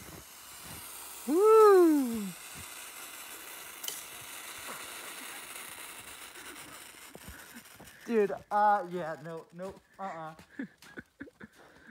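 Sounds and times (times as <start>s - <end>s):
snow sizzling on hot metal: 0.0s - 11.9s.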